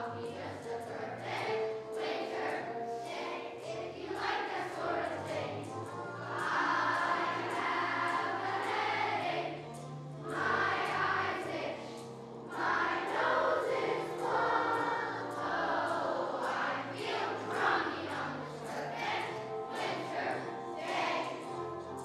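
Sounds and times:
children's choir singing: 0.0 - 22.0
instrumental accompaniment with beat: 0.0 - 22.0.

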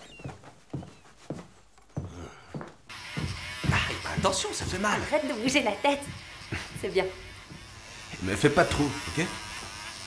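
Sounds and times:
electric hair clipper buzzing: 2.9 - 10.0.

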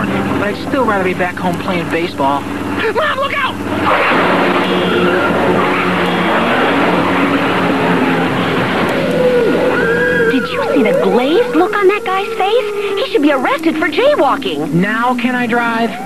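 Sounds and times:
tyres skidding on gravel: 0.0 - 14.3
jeep engine running hard: 0.0 - 16.0.

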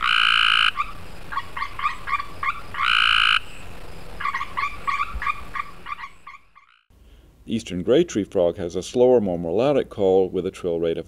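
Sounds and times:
faint frogs calling: 0.0 - 6.9
tree frog fast trills: 0.0 - 6.9.

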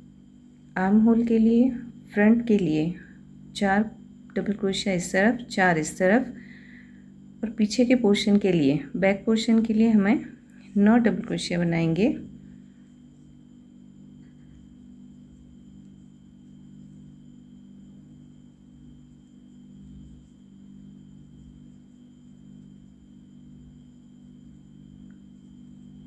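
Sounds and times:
faint high whine: 0.0 - 26.0
low background hum: 0.0 - 26.0.

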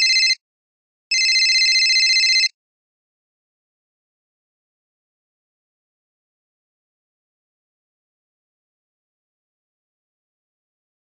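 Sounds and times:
telephone ringing: 0.0 - 0.4, 1.1 - 2.5.

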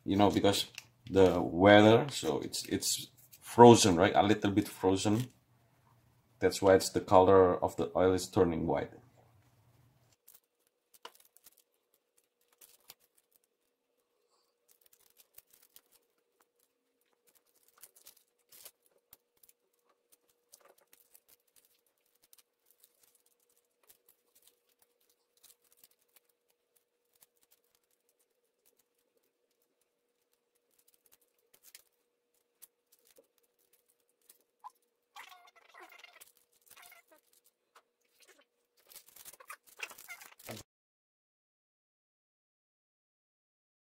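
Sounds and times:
plastic sachets crinkling: 0.0 - 3.5, 10.1 - 40.6.

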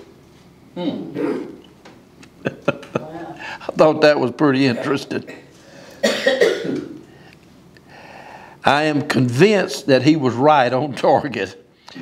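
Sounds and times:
man coughing: 1.1 - 1.6, 4.6 - 7.0.

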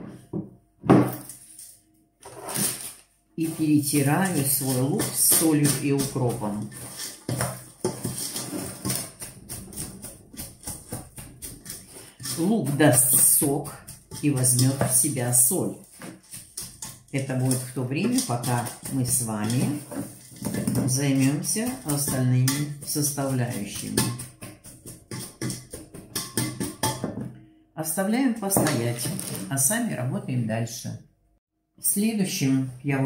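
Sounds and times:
pestle pounding in a steel bowl: 4.0 - 27.3.

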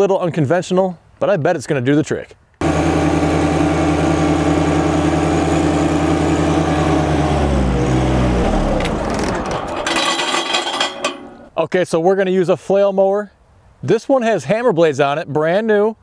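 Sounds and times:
tractor diesel engine running: 2.6 - 11.5
brief clattering: 8.7 - 11.5.

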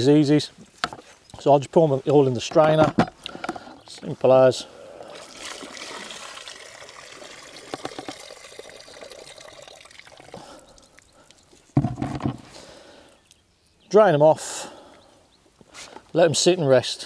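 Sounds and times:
water trickling: 4.9 - 11.8
water poured into a strainer: 5.1 - 10.5.

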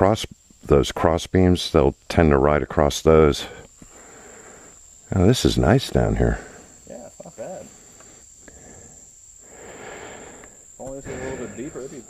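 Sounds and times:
high-pitched insect buzz: 0.0 - 12.0.

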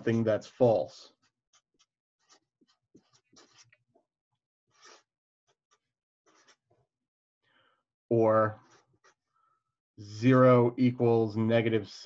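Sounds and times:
marker scratching on paper: 1.6 - 3.8, 4.7 - 5.0.

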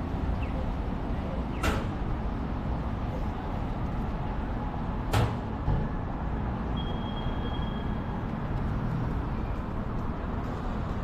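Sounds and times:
motor vehicle rumble: 0.0 - 11.0.

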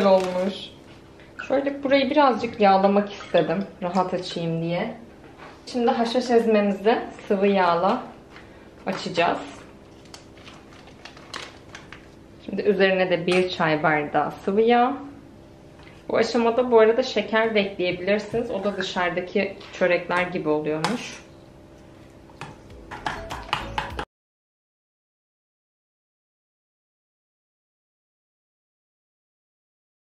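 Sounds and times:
plastic packet crinkling: 0.0 - 0.8, 8.4 - 12.2.

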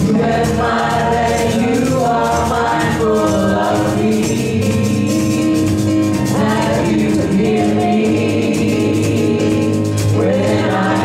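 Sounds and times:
group singing gospel song: 0.0 - 11.0
instrumental accompaniment: 0.0 - 11.0.

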